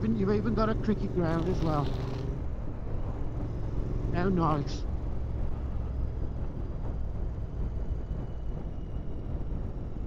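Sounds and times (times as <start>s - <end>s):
motorcycle engine cruising: 0.0s - 7.6s
road noise: 0.0s - 10.0s
wind noise: 4.9s - 10.0s.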